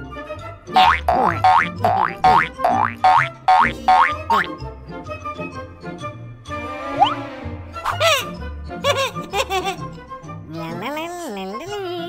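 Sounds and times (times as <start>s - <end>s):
cartoon background music: 0.0s - 12.0s
springy boing sound effects: 0.7s - 4.6s.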